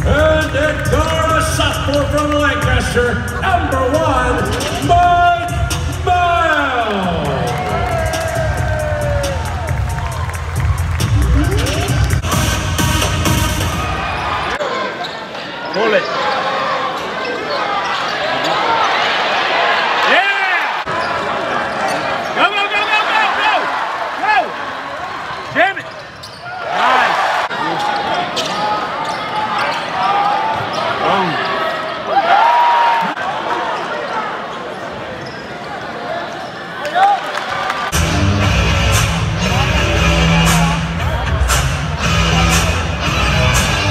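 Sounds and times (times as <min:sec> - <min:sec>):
crowd chatter: 0:00.0 - 0:43.9
arena music with heavy bass beat: 0:02.8 - 0:06.3, 0:07.3 - 0:14.0, 0:38.0 - 0:43.9
sneakers squeaking on hardwood: 0:25.9 - 0:26.6, 0:34.7 - 0:35.8.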